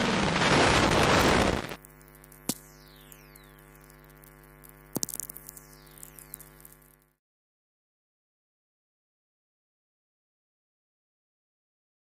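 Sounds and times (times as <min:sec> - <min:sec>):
sharp radio static clicks: 0:00.0 - 0:07.2
steady hum: 0:00.0 - 0:07.2
crackling radio clicks: 0:01.0 - 0:07.1.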